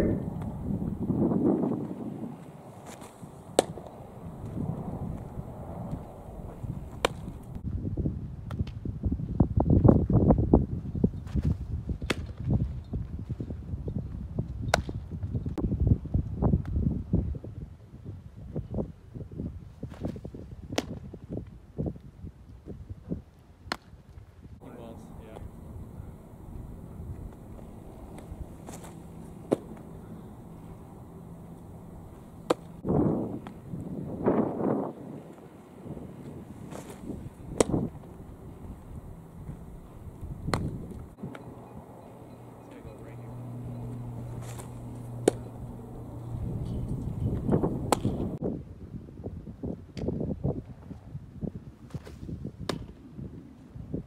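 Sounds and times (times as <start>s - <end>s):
low steady hum: 0.0s - 7.6s, 24.6s - 48.4s
gusty low rumble: 0.0s - 12.0s, 24.6s - 49.6s
faint outdoor background: 0.0s - 54.0s
ball popping into mitt: 2.8s - 4.6s, 6.9s - 7.4s, 26.2s - 32.7s, 36.7s - 38.1s, 39.4s - 41.0s, 43.8s - 45.8s, 47.3s - 48.3s.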